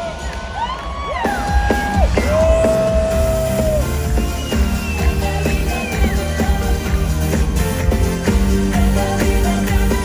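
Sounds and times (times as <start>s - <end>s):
crowd noise: 0.0s - 10.0s
live pop concert music: 0.0s - 10.0s.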